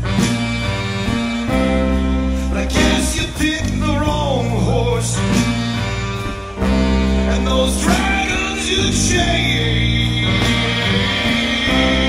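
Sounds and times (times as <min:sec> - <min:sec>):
bass line: 0:00.0 - 0:12.0
lead melody of bending notes: 0:00.0 - 0:12.0
live blues-rock band playing: 0:00.0 - 0:12.0.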